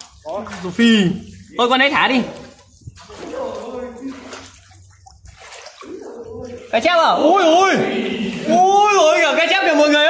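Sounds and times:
river water sloshing: 0:00.0 - 0:10.0.

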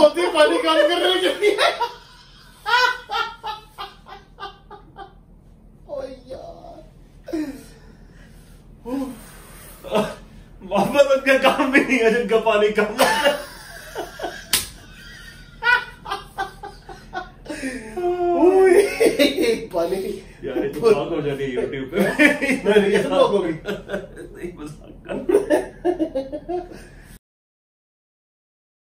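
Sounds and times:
man laughing hard: 0:00.2 - 0:05.1, 0:13.0 - 0:20.2, 0:21.6 - 0:27.1.

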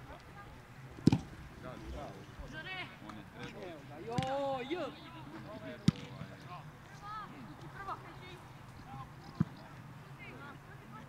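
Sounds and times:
football kick thump: 0:01.0 - 0:01.4.

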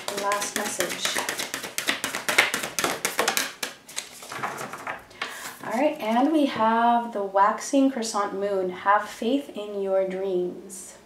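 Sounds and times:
cards being shuffled: 0:00.0 - 0:05.0.

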